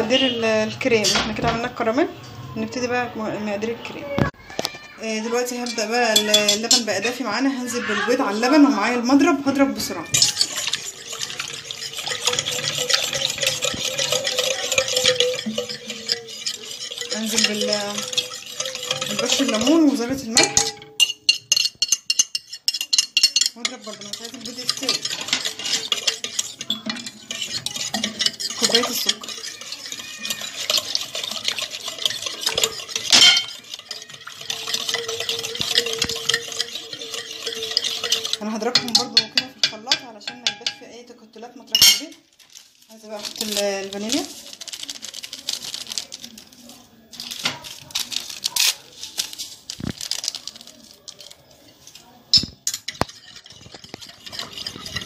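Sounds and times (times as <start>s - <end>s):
wire whisk clattering in saucepan: 5.0s - 41.0s, 41.7s - 42.2s, 43.0s - 55.0s
liquid sloshing: 5.1s - 40.8s, 41.8s - 55.0s.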